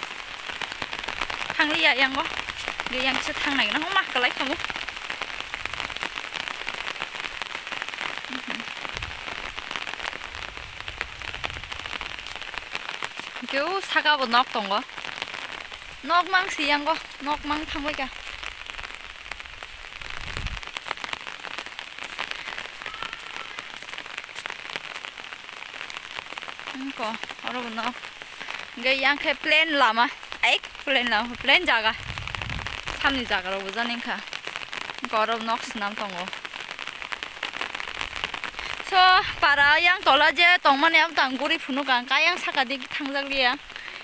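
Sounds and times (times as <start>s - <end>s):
rain pattering: 0.0s - 44.0s
low rumble: 32.0s - 33.0s.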